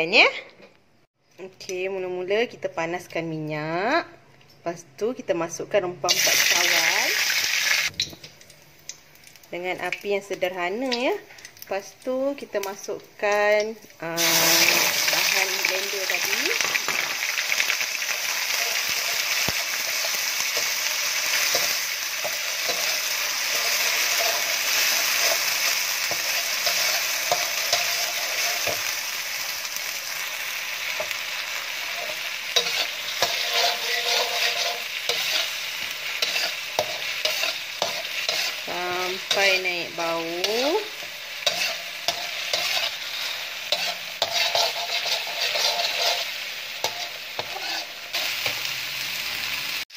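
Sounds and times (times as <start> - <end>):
paste sizzling in hot oil: 6.1 - 8.0, 13.7 - 49.9
metal spatula scraping a wok: 18.6 - 28.9, 31.8 - 39.6, 40.3 - 48.8.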